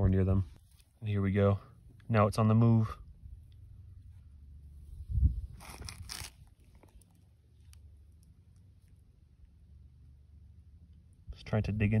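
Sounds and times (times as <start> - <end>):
crunching rustles: 5.4 - 9.1.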